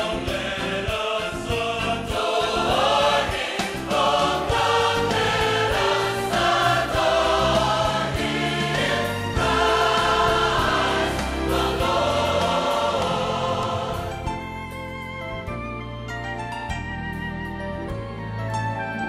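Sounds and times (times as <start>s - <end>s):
choir singing held chords: 0.0s - 14.7s.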